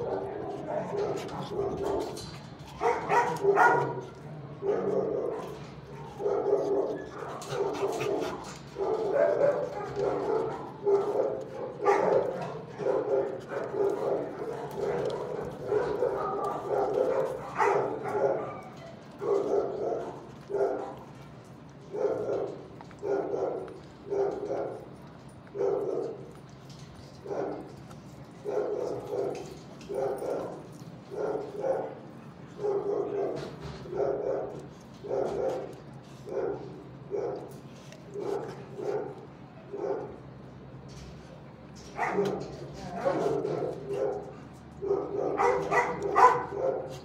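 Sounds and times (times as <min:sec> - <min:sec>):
dog barking: 0:00.0 - 0:02.2, 0:02.8 - 0:21.0, 0:21.9 - 0:24.9, 0:25.6 - 0:26.3, 0:28.4 - 0:35.7, 0:36.3 - 0:37.5, 0:38.2 - 0:40.2, 0:42.0 - 0:47.0.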